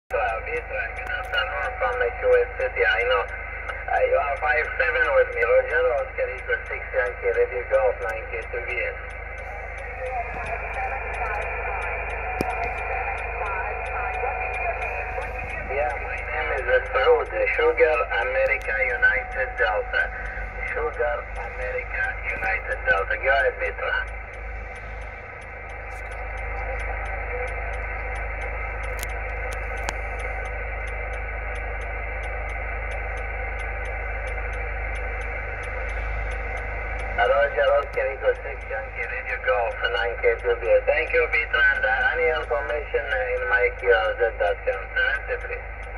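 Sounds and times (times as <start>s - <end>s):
faint garbled radio voices: 0.1s - 45.9s
hissy radio band noise: 0.1s - 45.9s.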